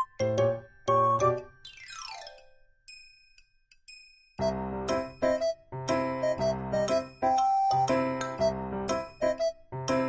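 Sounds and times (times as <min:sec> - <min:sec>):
playful background music: 0:00.0 - 0:10.0.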